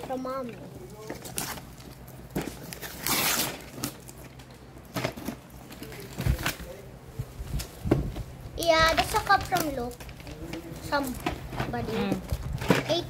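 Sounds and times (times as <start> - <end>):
wrapping paper tearing: 1.2 - 4.2.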